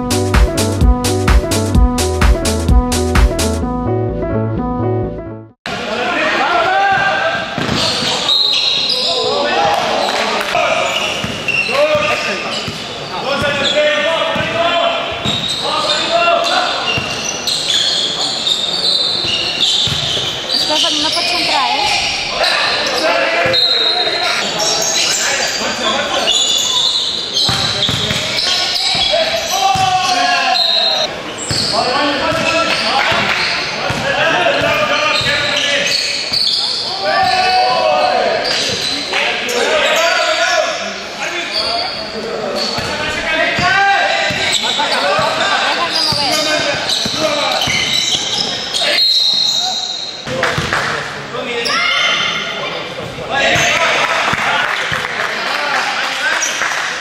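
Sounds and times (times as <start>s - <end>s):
basketball bouncing on court: 14.3s - 14.6s, 19.8s - 22.0s, 27.5s - 29.1s, 31.5s - 35.6s, 42.8s - 44.6s, 46.1s - 48.5s, 50.2s - 50.8s.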